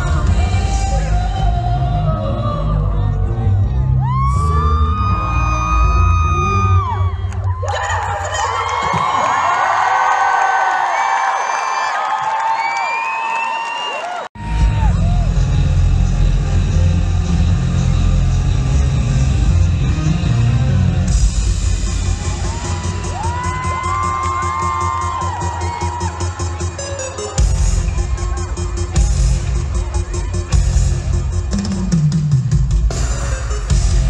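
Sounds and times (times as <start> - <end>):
amplified band music with heavy beat: 0.0 - 1.7, 14.4 - 34.0
crowd cheering and screaming: 3.3 - 15.9, 21.0 - 31.9.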